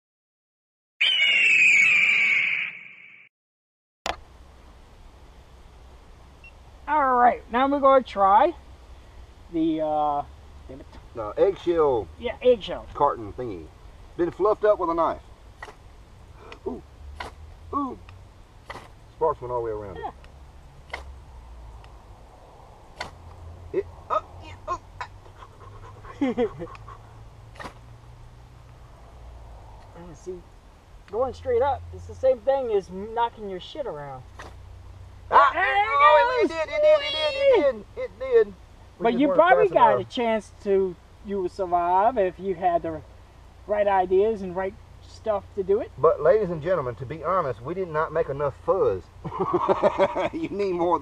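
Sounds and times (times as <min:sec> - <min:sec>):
faint outdoor hiss: 0:04.1 - 0:51.0.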